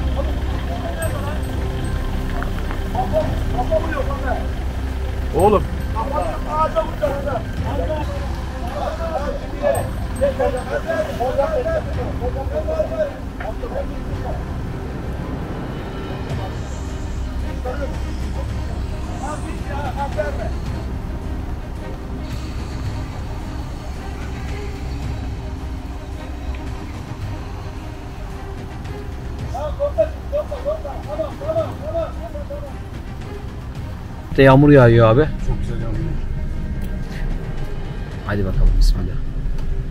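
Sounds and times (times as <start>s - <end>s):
off-road engines rumbling: 0.0s - 39.9s.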